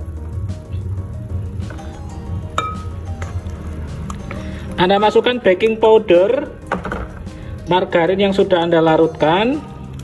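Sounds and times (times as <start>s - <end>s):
background music: 0.0s - 10.0s
spoon clinking against glass bowl: 2.6s - 2.9s.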